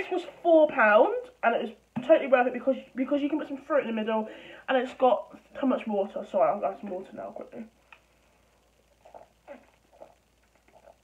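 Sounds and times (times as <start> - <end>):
person gulping water: 8.9 - 11.0.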